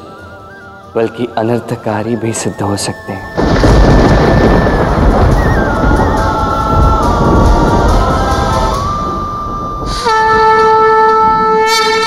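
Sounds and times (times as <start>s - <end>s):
deep rumbling swell: 3.4s - 10.0s
loud sustained horn-like note: 9.5s - 12.0s.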